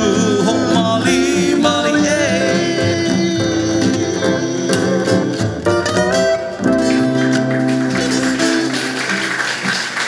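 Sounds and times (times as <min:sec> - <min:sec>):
band with steel guitar and bass: 0:00.0 - 0:10.0.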